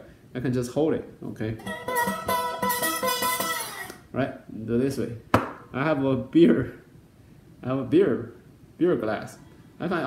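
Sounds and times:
slide resonator guitar: 0:01.6 - 0:04.1.

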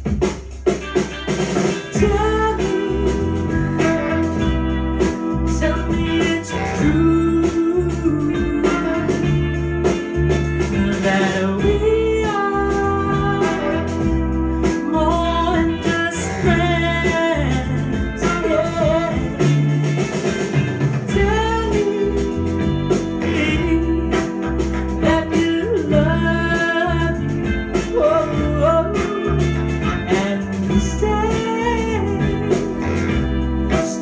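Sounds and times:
song with singer and band: 0:00.0 - 0:34.0.

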